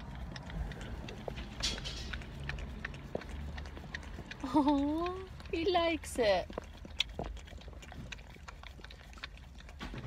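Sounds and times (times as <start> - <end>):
dog licking clicks: 0.0 - 10.0.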